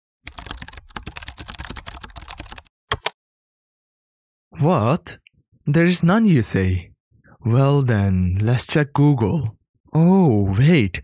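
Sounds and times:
rapid keyboard typing: 0.3s - 3.2s.

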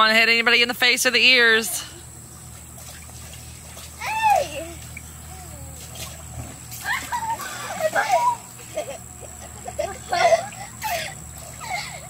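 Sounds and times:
water splashing in paddling pool: 1.3s - 12.0s
young children squealing: 4.0s - 4.7s, 6.8s - 8.6s.

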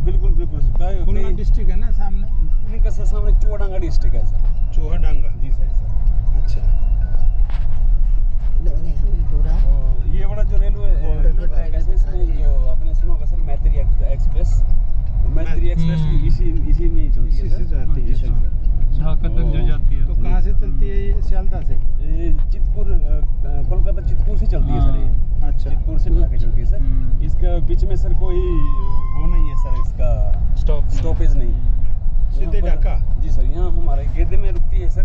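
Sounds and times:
voices talking: 0.0s - 31.6s
engine and road rumble: 0.0s - 35.0s.

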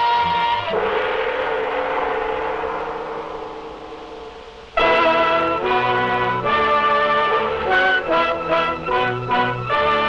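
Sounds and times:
brass-led orchestral music: 0.0s - 1.1s, 4.8s - 10.0s
gong crash ringing: 0.6s - 6.0s.

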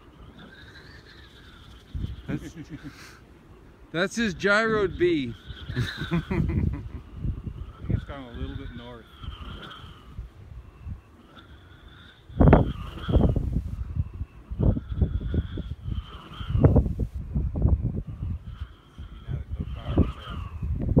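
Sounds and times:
wind buffeting microphone: 0.8s - 2.9s, 3.6s - 21.0s.

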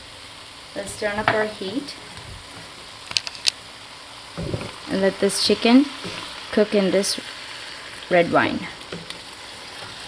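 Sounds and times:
food sizzling in a wok: 0.0s - 10.0s.

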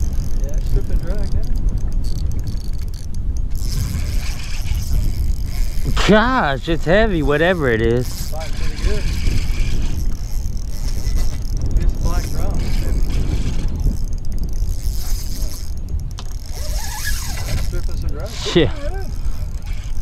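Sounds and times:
fishing reel drag running: 0.0s - 20.0s.

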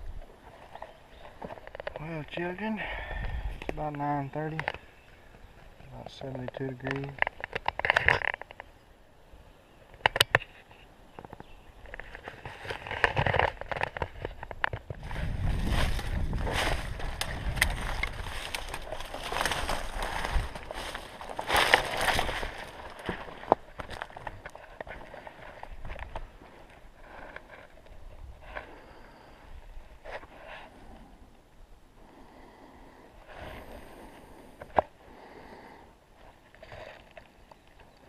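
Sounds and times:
crunching and rustling in dry leaves: 11.8s - 29.3s.

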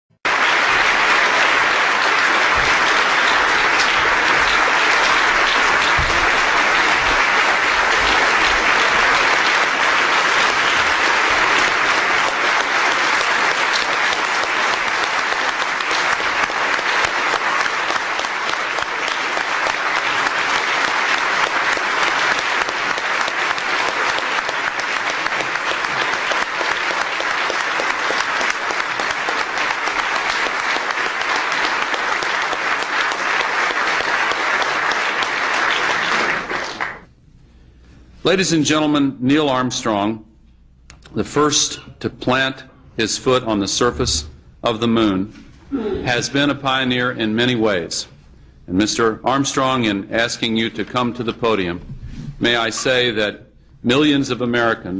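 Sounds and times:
large audience applauding: 0.2s - 37.1s.

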